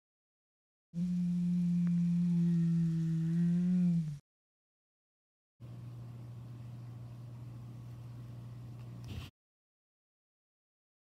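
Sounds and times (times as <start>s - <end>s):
steady low-pitched tone: 1.0s - 4.2s.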